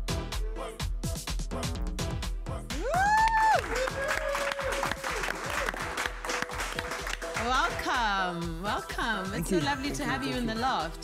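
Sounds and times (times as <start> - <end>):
dance music: 0.0 - 11.0
applause: 3.0 - 7.9.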